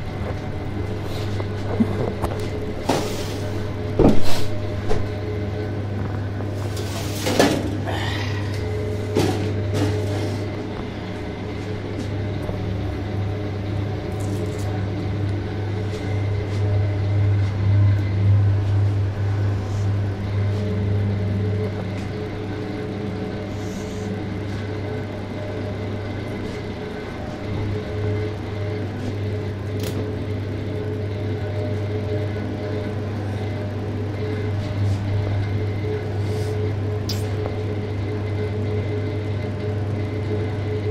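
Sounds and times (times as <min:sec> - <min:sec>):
refrigeration unit humming: 0:00.0 - 0:40.9.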